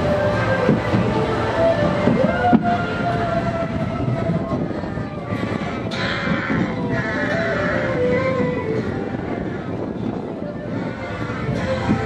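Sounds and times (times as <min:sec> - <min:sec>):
roller coaster cars rattling: 0:00.0 - 0:12.0.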